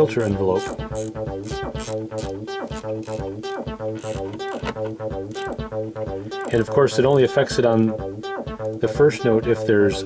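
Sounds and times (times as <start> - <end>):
synth bass line: 0.0 - 10.0.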